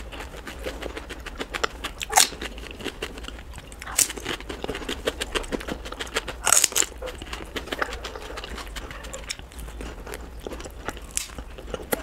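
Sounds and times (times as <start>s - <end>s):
close chewing and mouth sounds: 0.0s - 12.0s.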